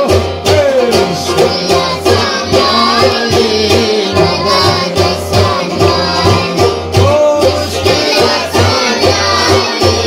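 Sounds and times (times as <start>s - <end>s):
children and men singing: 0.0s - 10.0s
drum steady beat: 0.0s - 10.0s.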